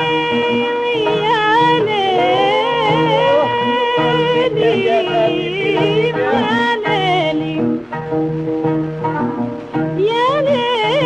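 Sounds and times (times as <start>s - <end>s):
woman singing melismas: 0.0s - 7.8s, 10.0s - 11.0s
small instrumental accompaniment: 0.0s - 11.0s.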